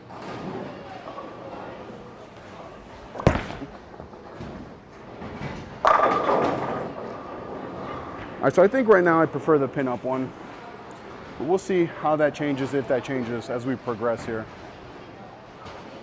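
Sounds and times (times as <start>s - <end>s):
bowling ball rolling: 0.1s - 8.8s
bowling pins clattering: 2.9s - 8.4s
bowling ball thudding on lane: 3.1s - 7.0s.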